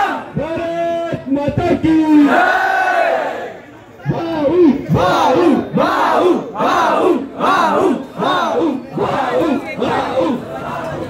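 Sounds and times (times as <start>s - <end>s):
crowd chanting: 2.3s - 3.6s, 4.4s - 11.0s.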